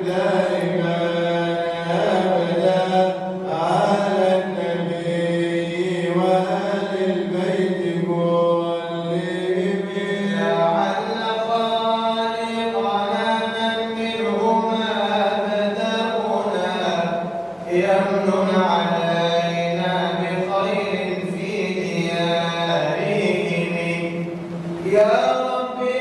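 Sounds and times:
men chanting into a microphone: 0.0s - 26.0s.

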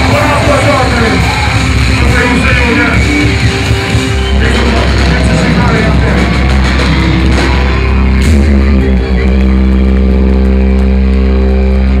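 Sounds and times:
electric guitar and bass chord: 0.0s - 12.0s.

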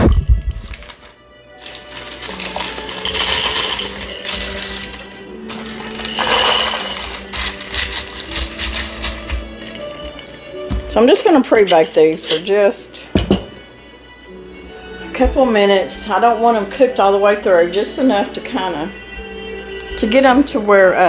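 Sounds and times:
baking stones clattering from a jar: 0.0s - 13.8s.

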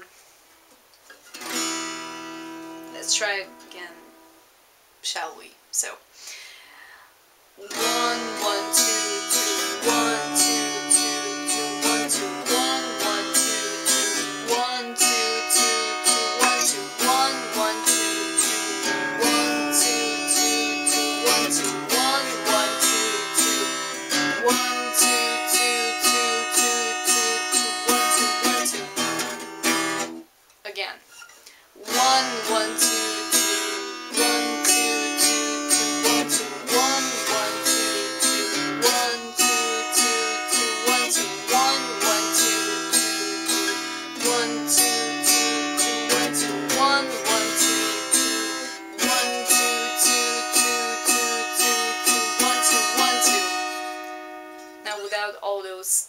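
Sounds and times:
acoustic guitar strumming: 1.1s - 4.5s, 7.6s - 30.3s, 31.1s - 55.9s.

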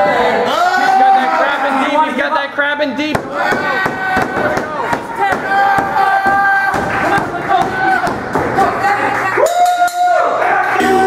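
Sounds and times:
people yelling and shouting: 0.0s - 11.0s.

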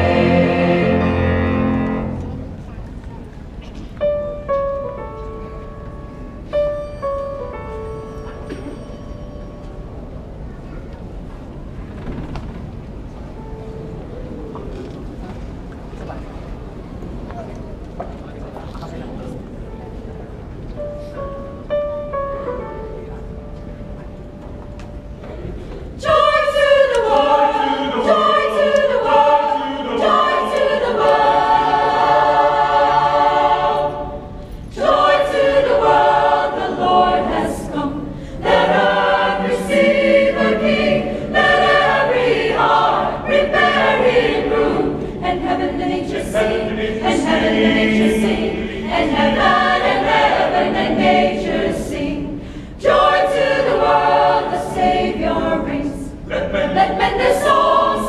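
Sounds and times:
choir singing in parts: 0.0s - 2.6s, 26.0s - 58.0s.

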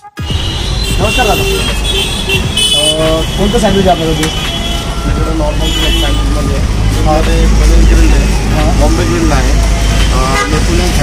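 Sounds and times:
voices talking: 0.6s - 11.0s
low rumble of road traffic: 0.9s - 11.0s.

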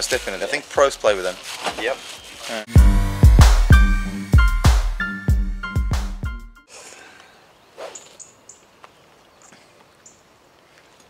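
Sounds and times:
small birds chirping: 0.1s - 2.7s, 6.7s - 11.0s.

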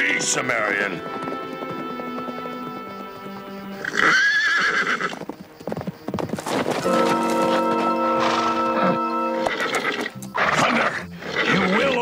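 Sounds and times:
orchestral music: 0.0s - 4.3s, 6.6s - 12.0s
horse whinnying: 0.0s - 12.0s.

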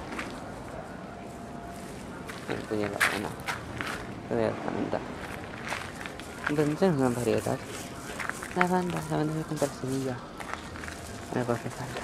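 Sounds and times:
steady background noise: 0.0s - 12.0s
person speaking: 6.1s - 12.0s.

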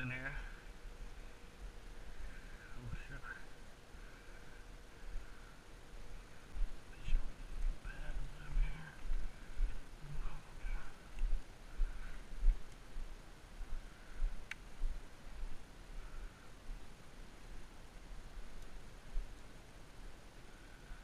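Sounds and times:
distant calls: 0.0s - 12.7s.

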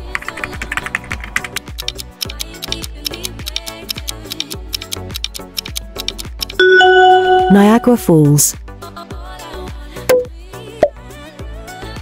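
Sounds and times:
background music with steady beat: 0.0s - 12.0s
keyboard key clicks: 1.4s - 6.6s.

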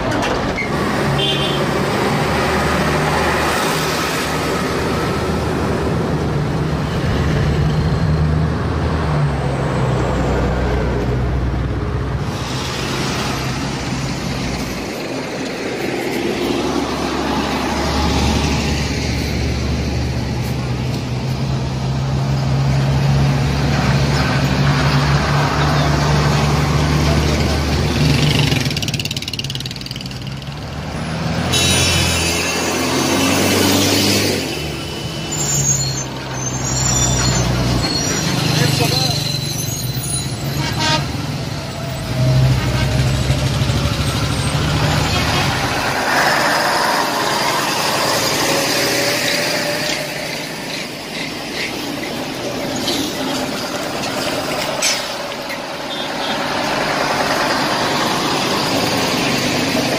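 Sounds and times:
military trucks driving past: 0.0s - 59.9s.

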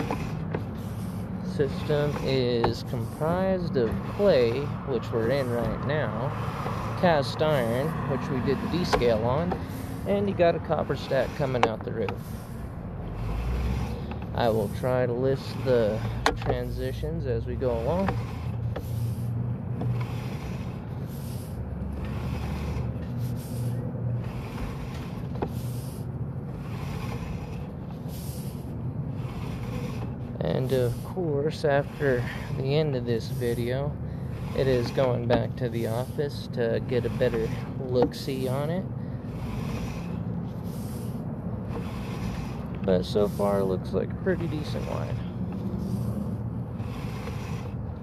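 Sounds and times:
engine humming: 0.0s - 48.0s
low mechanical rumble: 0.0s - 48.0s.

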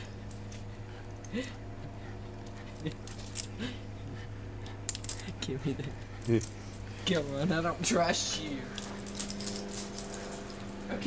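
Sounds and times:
light metallic leash clinks: 0.0s - 3.7s, 4.6s - 7.6s, 8.2s - 11.0s
steady low hum: 0.0s - 11.0s.

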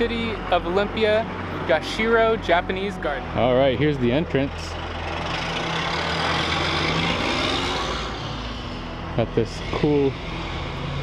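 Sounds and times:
steady low engine hum: 0.0s - 11.0s
passing vehicle tyre noise: 3.8s - 11.0s.

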